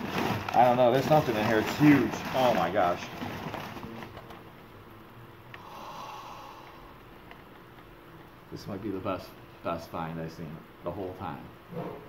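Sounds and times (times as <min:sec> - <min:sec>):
packing paper rustling: 0:00.0 - 0:04.6
soft breathy sound: 0:05.6 - 0:07.0.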